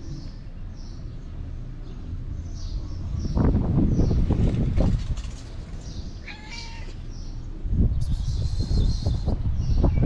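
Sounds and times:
cat meowing: 6.2s - 7.1s.

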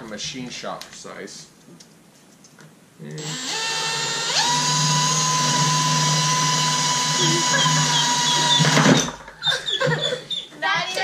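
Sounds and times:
cordless drill cutting plastic: 3.2s - 9.2s.

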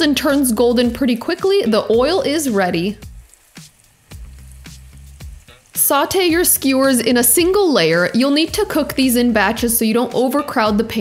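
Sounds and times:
chicken sizzling in oil: 0.0s - 11.0s.

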